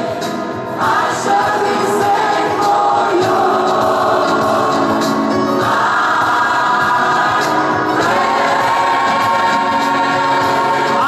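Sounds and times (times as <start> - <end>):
gospel choir singing sustained chords: 0.0 - 11.0.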